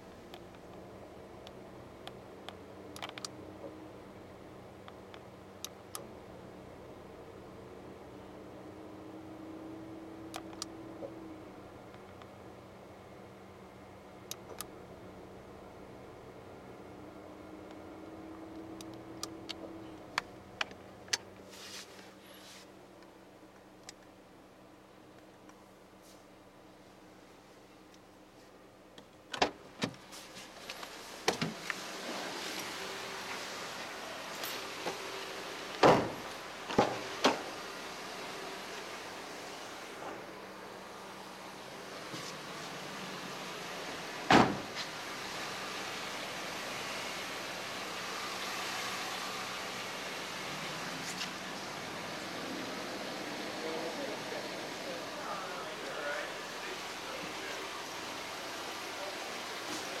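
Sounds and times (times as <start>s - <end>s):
showroom background noise: 0.1s - 60.0s
loud thump: 44.3s - 44.7s.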